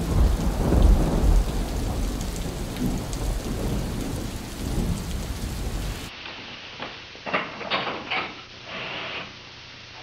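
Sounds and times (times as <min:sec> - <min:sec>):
low thunder rumbling: 0:00.0 - 0:06.1
heavy rain: 0:00.0 - 0:07.2.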